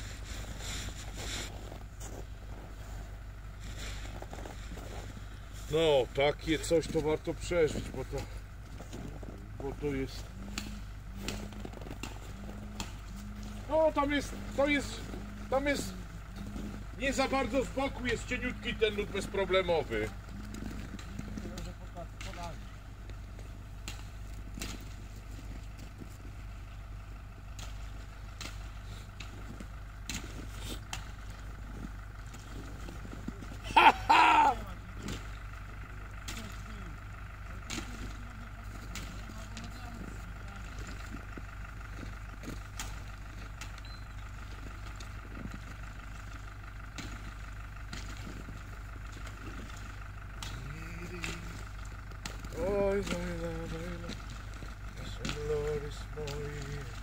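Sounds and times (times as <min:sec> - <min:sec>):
faint clicks and crunches: 0:00.0 - 0:33.6, 0:34.6 - 0:57.0
person yelling: 0:33.6 - 0:34.8.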